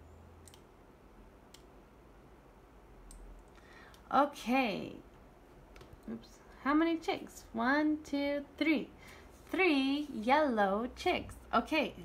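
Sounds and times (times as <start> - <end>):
computer mouse clicks: 0.4 - 0.7, 1.5 - 1.7.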